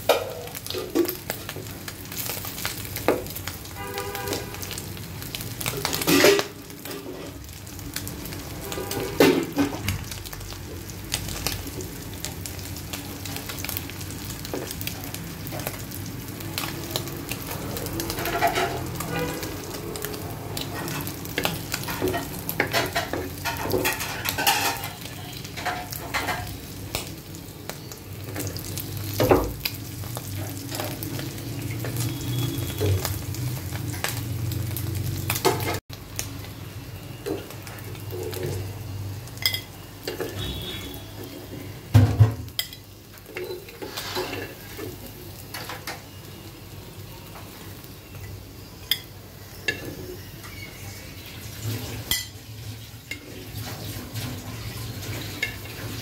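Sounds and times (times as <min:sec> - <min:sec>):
fish sizzling in oil: 0:00.0 - 0:56.0
spatula scraping and knocking pan: 0:20.7 - 0:25.0.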